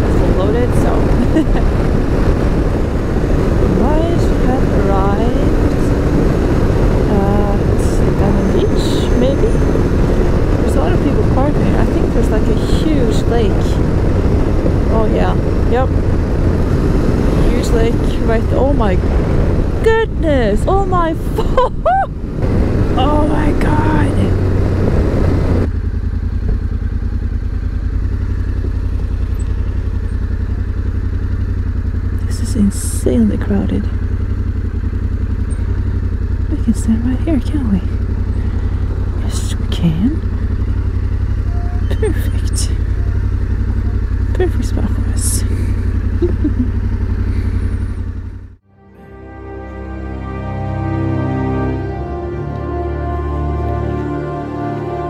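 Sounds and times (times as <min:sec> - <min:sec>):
distant voices: 0:00.0 - 0:48.6
rushing wind: 0:00.0 - 0:48.6
motorcycle engine: 0:00.0 - 0:55.0.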